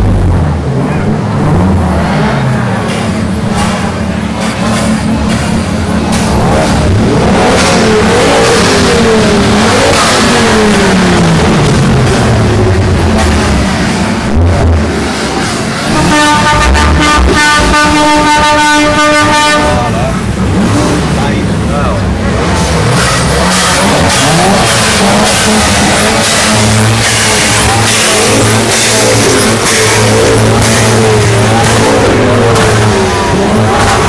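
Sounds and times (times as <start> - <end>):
car engines revving: 0.0 - 34.0.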